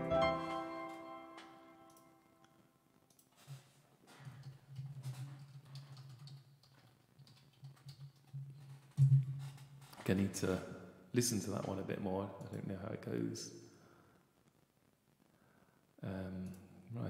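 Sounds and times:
digital piano chord: 0.0s - 2.2s
typing on computer keyboard: 4.3s - 9.7s.

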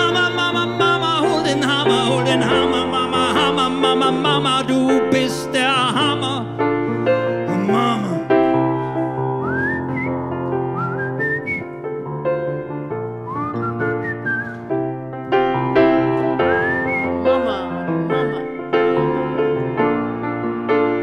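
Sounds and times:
piano chords: 0.0s - 21.0s
man whistling a melody: 9.4s - 11.8s, 13.2s - 14.8s, 16.4s - 17.8s.

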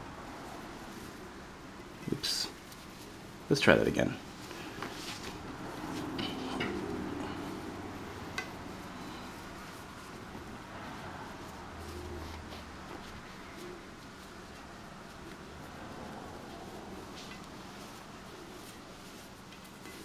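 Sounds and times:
rustling of cords being tied: 0.3s - 20.0s.

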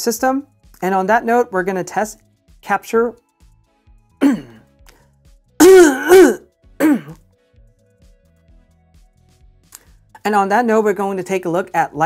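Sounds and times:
faint background music: 0.0s - 12.0s
man clearing his throat: 4.2s - 4.6s, 5.6s - 7.2s.

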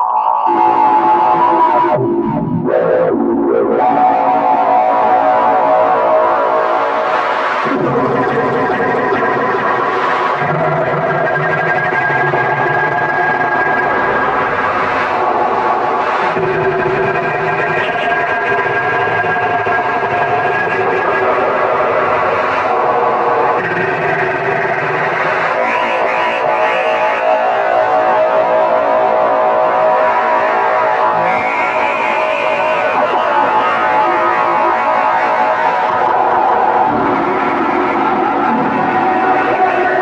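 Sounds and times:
distorted electronic noise music: 0.0s - 40.0s.

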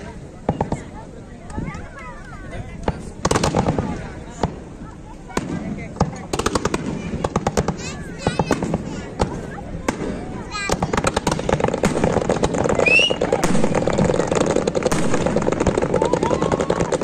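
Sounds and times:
fireworks bangs and crackles: 0.0s - 17.0s.

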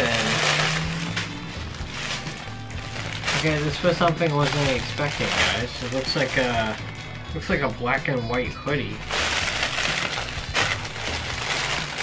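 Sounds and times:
plastic packaging rustling: 0.0s - 7.0s, 9.0s - 12.0s
background music: 0.0s - 12.0s.

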